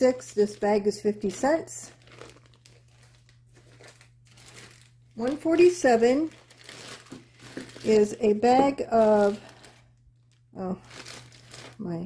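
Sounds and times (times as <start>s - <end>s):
plastic bag crinkling: 0.1s - 12.0s.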